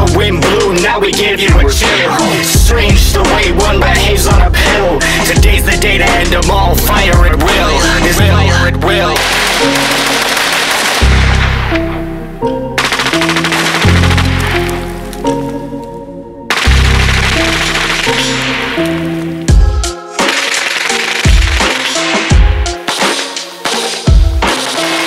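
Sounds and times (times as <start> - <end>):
hip-hop beat with heavy bass: 0.0 - 14.6, 16.5 - 25.0
machine-gun fire: 9.2 - 11.8, 12.8 - 14.9, 16.5 - 19.0, 20.2 - 23.2
drum hits: 19.5 - 24.8.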